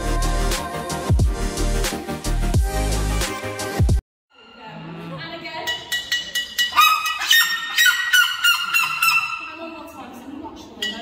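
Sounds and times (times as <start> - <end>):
bird calling loudly: 6.8 - 9.8.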